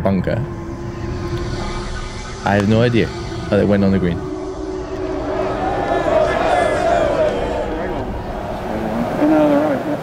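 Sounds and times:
steady background rumble: 0.0s - 10.0s.

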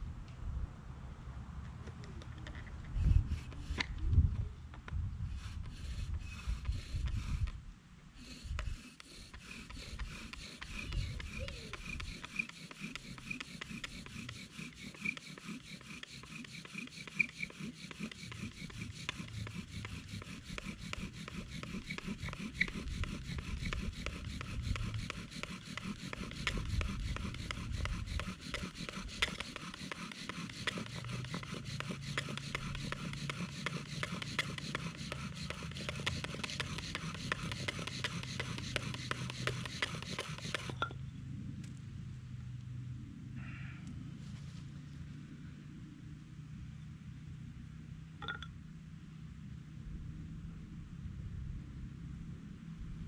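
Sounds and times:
bow drill spindle rubbing wood: 3.0s - 4.0s, 5.3s - 7.6s, 8.2s - 40.9s.

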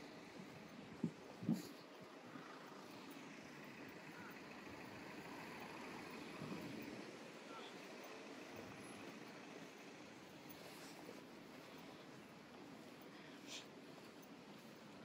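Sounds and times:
faint city street traffic: 0.0s - 15.0s.

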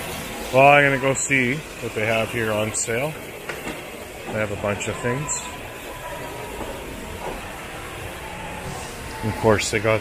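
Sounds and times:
store room noise hiss: 0.0s - 10.0s.

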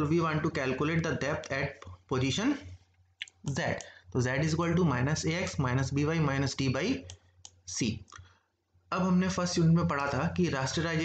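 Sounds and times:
computer mouse click: 7.0s - 8.3s.

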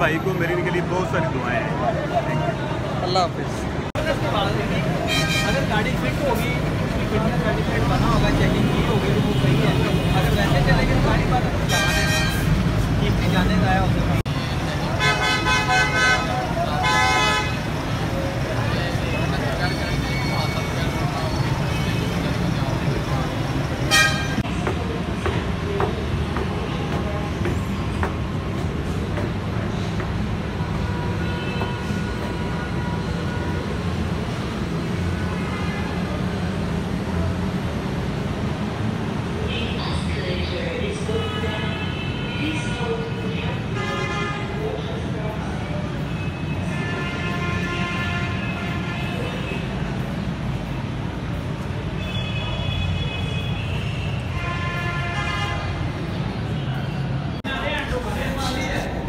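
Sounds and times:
bus engines and traffic rumble: 0.0s - 59.0s
vehicle horns honking: 5.0s - 5.8s, 11.6s - 12.6s, 14.3s - 17.7s, 23.9s - 24.5s, 30.8s - 33.8s, 43.7s - 44.7s, 46.0s - 49.8s, 52.0s - 55.9s.

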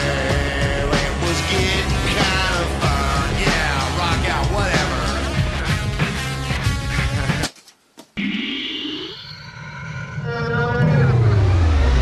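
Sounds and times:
rising tone: 8.2s - 12.0s
deep falling sweep: 9.2s - 12.0s.

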